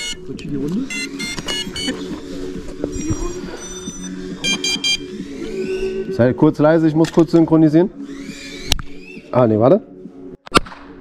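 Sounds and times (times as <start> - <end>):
short electronic beeps: 0.9 - 2.0, 2.9 - 6.1.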